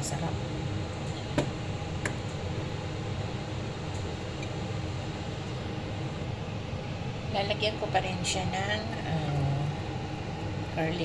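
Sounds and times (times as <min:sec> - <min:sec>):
steady low hum and hiss: 0:00.0 - 0:11.0.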